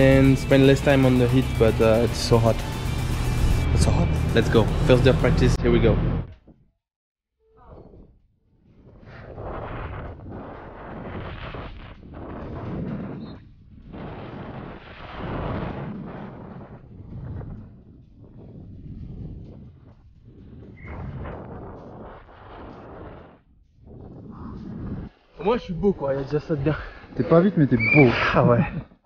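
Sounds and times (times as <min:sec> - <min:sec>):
wind rushing over microphone: 0:08.7 - 0:25.5.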